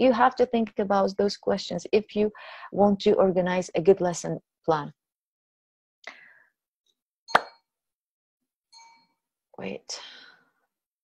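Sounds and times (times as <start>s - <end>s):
sharp pop with ringing tone: 7.3s - 7.6s.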